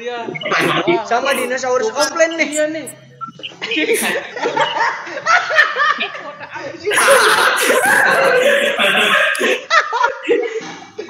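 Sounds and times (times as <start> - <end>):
men's voices: 0.3 - 4.3, 6.9 - 9.6
young men laughing: 3.6 - 6.2, 6.9 - 10.5.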